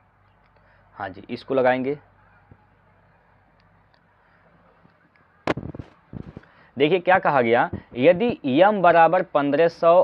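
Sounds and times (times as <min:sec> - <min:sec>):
faint steady hiss: 0:00.0 - 0:10.0
loud sharp noise burst: 0:05.4 - 0:06.4
short crackles: 0:05.5 - 0:06.5.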